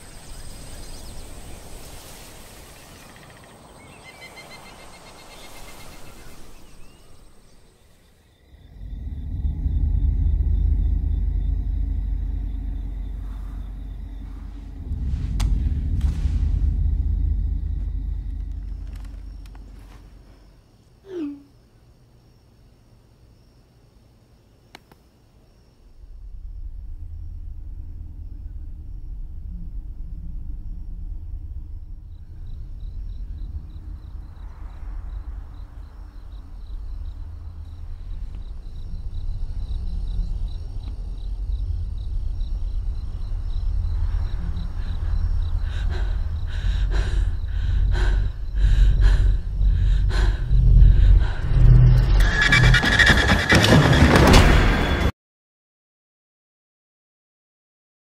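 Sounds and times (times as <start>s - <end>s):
low rumbling suspense drone: 8.4s - 20.7s, 25.8s - 54.4s.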